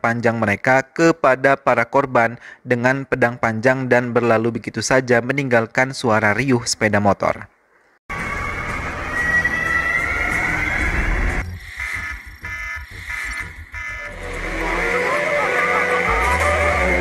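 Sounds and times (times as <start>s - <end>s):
action film music: 8.1s - 17.0s
vehicle engine rising: 8.1s - 17.0s
electronic computer beeps: 11.4s - 17.0s
deep bass music cue: 12.8s - 17.0s.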